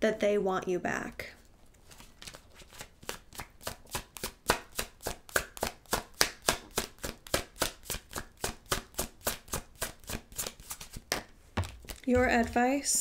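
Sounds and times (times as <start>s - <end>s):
cards being shuffled: 1.8s - 13.0s.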